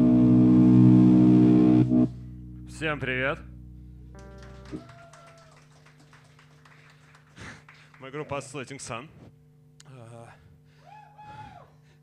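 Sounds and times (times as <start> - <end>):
band sustained chord: 0.0 - 4.8
amplifier hum: 0.0 - 6.0.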